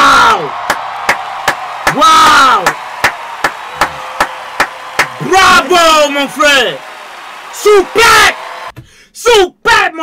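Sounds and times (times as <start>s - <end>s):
person clapping hands: 0.6s - 8.7s.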